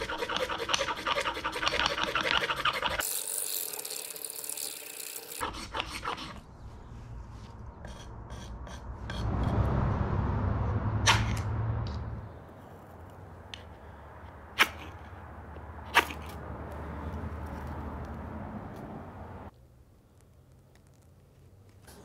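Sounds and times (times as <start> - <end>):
low rumble: 7.6 - 12.6.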